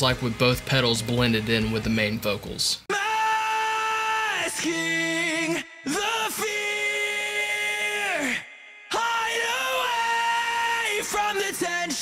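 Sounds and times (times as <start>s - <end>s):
distorted male singing: 2.9s - 12.0s.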